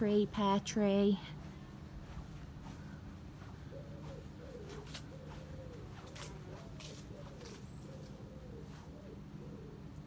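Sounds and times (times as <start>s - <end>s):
pigeon cooing: 3.4s - 10.0s.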